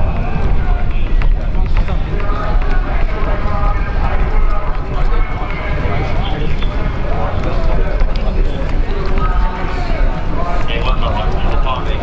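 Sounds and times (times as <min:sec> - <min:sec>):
people talking: 0:00.0 - 0:12.0
steady low rumble: 0:00.0 - 0:12.0.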